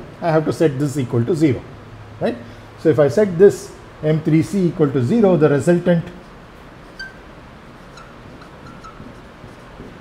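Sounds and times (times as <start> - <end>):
low room hiss: 0.0 - 10.0
squeaks of writing on a board: 6.9 - 7.2, 7.8 - 10.0.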